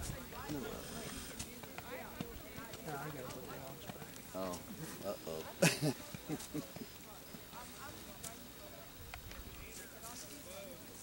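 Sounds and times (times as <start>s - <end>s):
horse hooves on muddy ground: 0.0s - 8.5s
people talking indistinctly: 0.0s - 10.9s.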